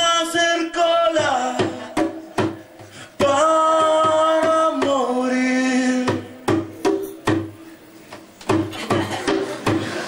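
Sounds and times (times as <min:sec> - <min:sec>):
drum hits: 0:01.1 - 0:05.1, 0:06.0 - 0:07.6, 0:08.2 - 0:10.0.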